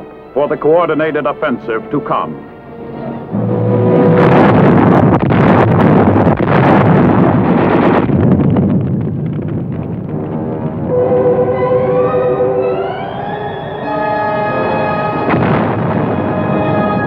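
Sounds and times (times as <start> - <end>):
battle rumble with rapid crackling: 3.1 - 12.9
orchestral music held note: 10.9 - 15.6.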